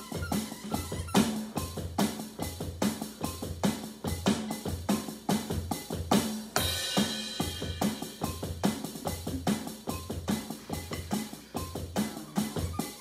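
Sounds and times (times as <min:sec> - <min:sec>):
drums played with sticks: 0:00.0 - 0:13.0.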